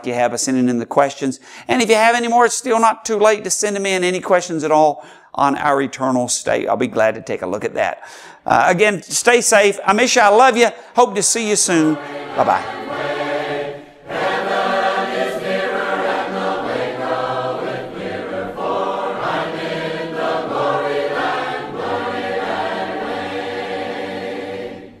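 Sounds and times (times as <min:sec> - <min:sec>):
choir singing a cappella: 0:11.6 - 0:25.0.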